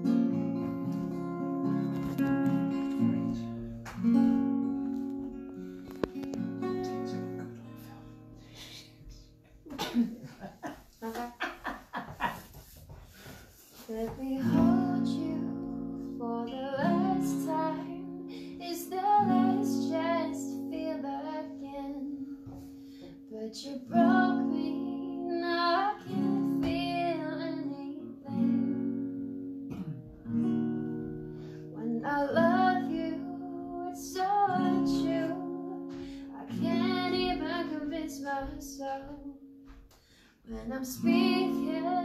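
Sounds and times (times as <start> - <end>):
acoustic guitar strumming chords: 0.0 - 9.6, 14.3 - 23.3, 23.9 - 40.2, 40.9 - 42.0
person singing: 13.8 - 22.5, 31.8 - 39.4, 40.5 - 42.0.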